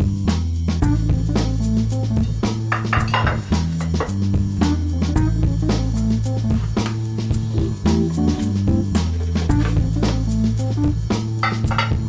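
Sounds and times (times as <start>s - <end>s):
background music with beat: 0.0s - 12.0s
ceramic tray clinking on tiles: 2.7s - 4.0s, 11.4s - 12.0s.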